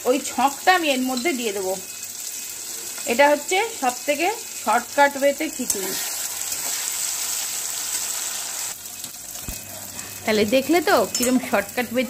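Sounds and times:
food sizzling on stove: 0:00.0 - 0:12.0.

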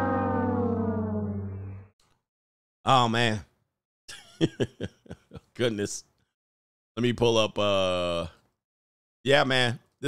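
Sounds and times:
brass horn long note: 0:00.0 - 0:01.9.

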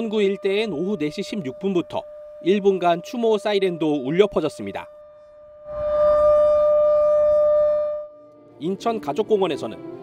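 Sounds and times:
memorial siren steady tone: 0:00.0 - 0:08.9.

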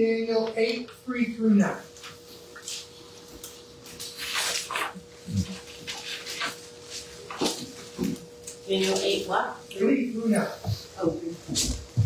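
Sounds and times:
faint electrical hum: 0:00.0 - 0:12.0
pages rustling: 0:02.0 - 0:09.2.

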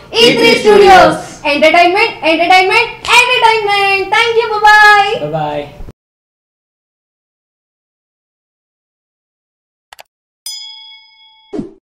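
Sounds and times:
notification bell ding: 0:10.5 - 0:11.8.

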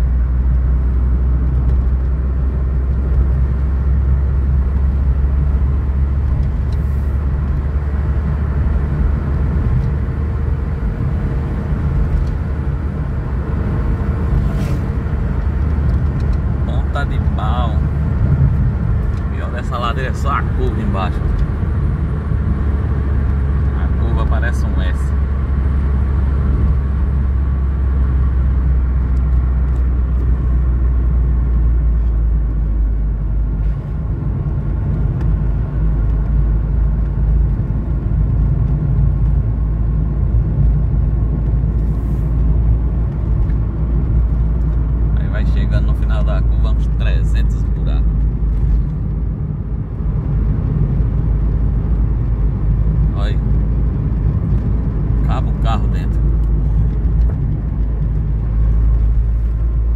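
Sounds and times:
car engine and tyre drone: 0:00.0 - 0:59.9.

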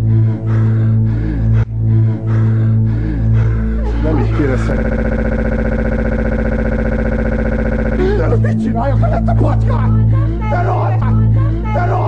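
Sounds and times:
stutter edit buzzing tone: 0:04.4 - 0:08.5.

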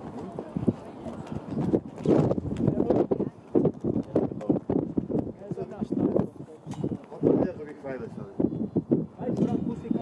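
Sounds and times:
people talking: 0:00.0 - 0:01.8, 0:05.3 - 0:08.5, 0:09.2 - 0:10.0.

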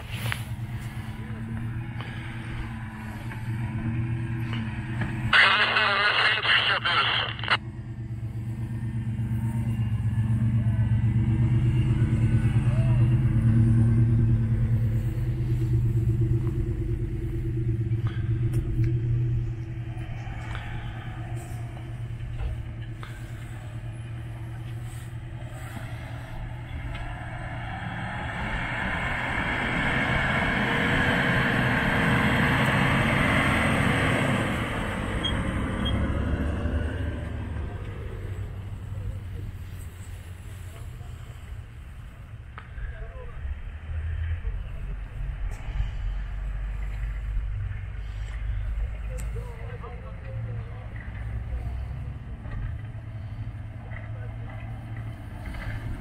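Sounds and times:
suv engine under load: 0:00.0 - 0:05.3, 0:07.6 - 0:42.8, 0:43.5 - 0:56.0.

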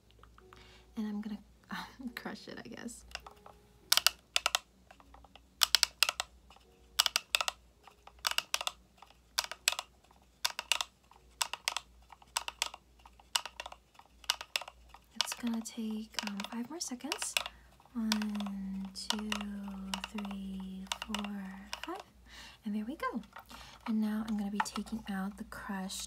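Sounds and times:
manual coffee grinder clicking: 0:03.0 - 0:22.2, 0:22.8 - 0:26.0.

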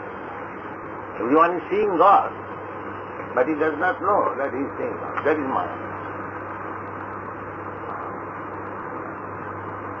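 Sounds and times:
low constant hum: 0:00.0 - 0:10.0
tape hiss: 0:00.0 - 0:10.0.

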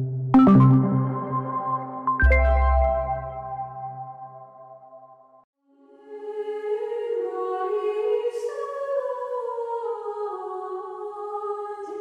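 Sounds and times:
soft music: 0:00.3 - 0:04.7.

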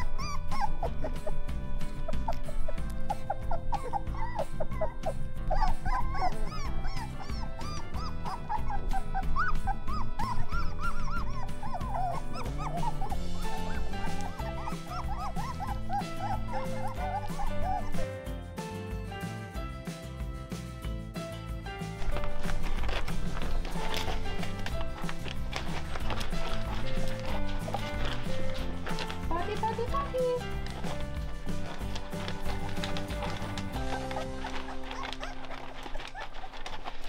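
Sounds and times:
puppies whimpering and squeaking: 0:00.0 - 0:18.4, 0:21.7 - 0:37.0
background music with beat: 0:00.0 - 0:35.1.

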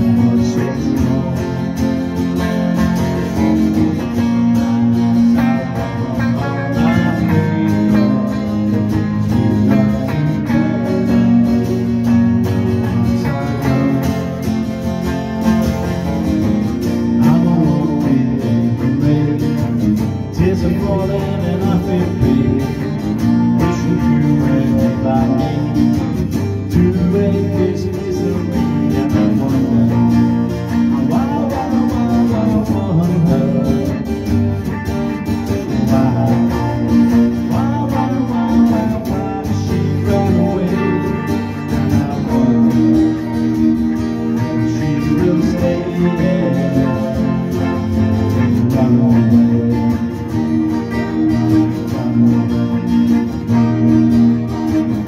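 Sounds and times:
electric guitar through amplifier: 0:00.0 - 0:55.0.

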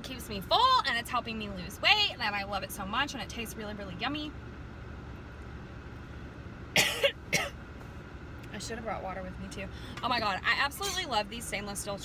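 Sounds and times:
car cabin road noise: 0:00.0 - 0:12.0
woman coughing: 0:06.8 - 0:07.6.

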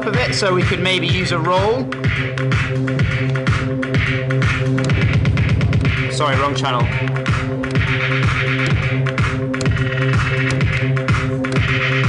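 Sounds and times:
electronic dance track: 0:00.0 - 0:12.0
stuttering beat repeats: 0:00.0 - 0:12.0.

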